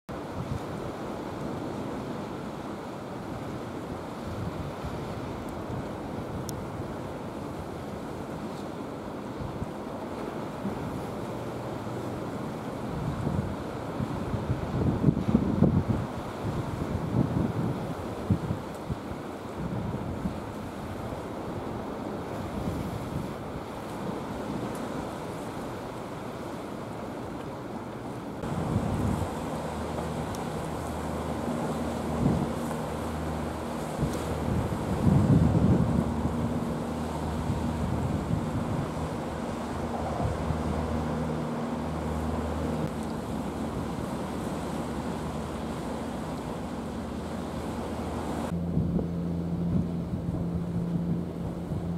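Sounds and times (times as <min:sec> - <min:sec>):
sea wash: 0:00.1 - 0:51.9
wind buffeting microphone: 0:04.0 - 0:08.4, 0:10.5 - 0:25.6, 0:28.4 - 0:51.9.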